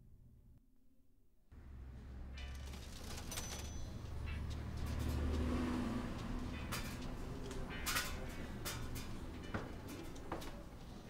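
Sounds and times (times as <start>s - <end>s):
low rumble of passing vehicle: 1.6s - 11.0s.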